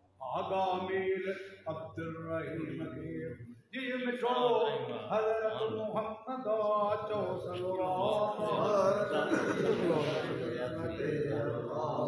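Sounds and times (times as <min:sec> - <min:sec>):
men chanting together: 0:00.2 - 0:03.5, 0:04.2 - 0:12.0.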